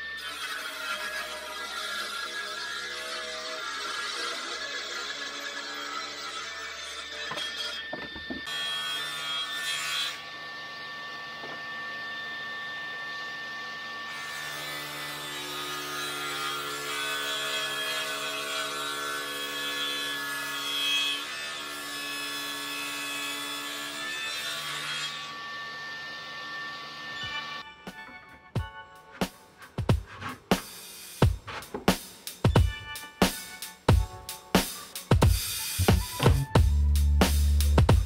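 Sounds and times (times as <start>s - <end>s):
table saw motor whine: 0.0s - 24.4s, 25.0s - 28.2s
saw blade cutting wood: 0.0s - 28.2s, 29.3s - 36.3s.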